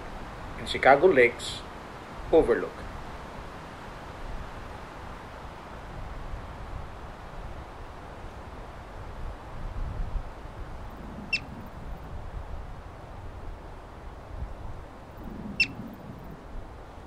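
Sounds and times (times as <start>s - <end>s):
wind rumbling on microphone: 0.0s - 17.0s
marmot chirp: 10.9s - 12.0s, 15.2s - 16.4s.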